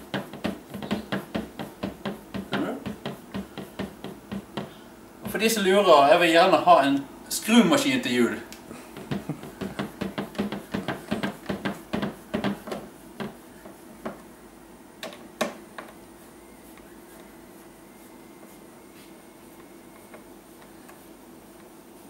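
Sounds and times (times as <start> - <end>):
knocks: 0.0 - 4.7, 8.9 - 14.2
faint steady hum: 0.0 - 22.0.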